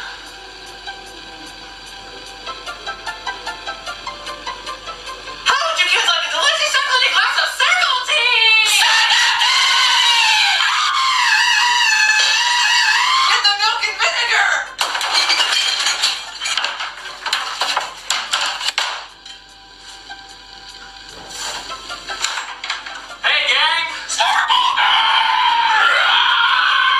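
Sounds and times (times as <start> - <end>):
music: 0.0 - 15.0, 15.8 - 26.1
high-pitched wavering voices: 23.2 - 26.9.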